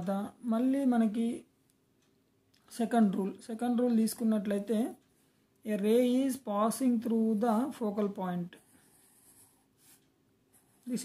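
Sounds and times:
marker drawing on paper: 0:08.6 - 0:11.0.

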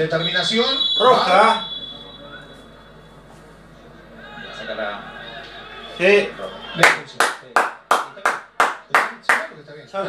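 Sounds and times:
person clapping hands: 0:06.8 - 0:09.5.

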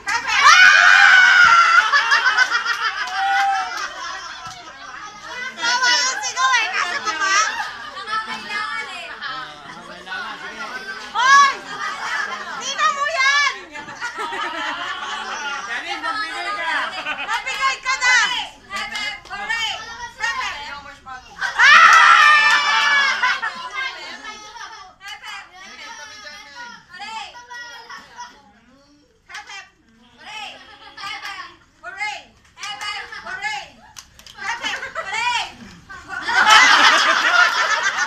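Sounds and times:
people shouting excitedly: 0:00.1 - 0:02.3, 0:21.4 - 0:23.5
people laughing: 0:00.3 - 0:17.8, 0:21.4 - 0:24.8, 0:34.4 - 0:38.0.

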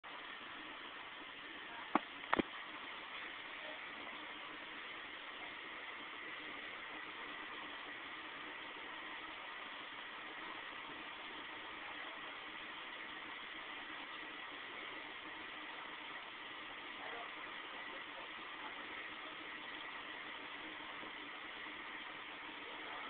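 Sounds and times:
faint constant hum: 0:00.0 - 0:23.0
low background hiss: 0:00.0 - 0:23.0.

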